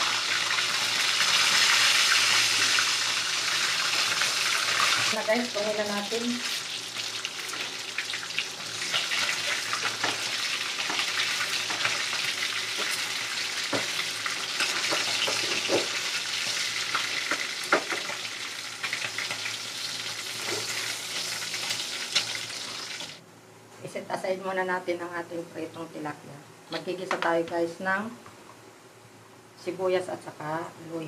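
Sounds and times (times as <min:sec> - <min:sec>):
fish sizzling in hot oil: 0:00.0 - 0:23.2.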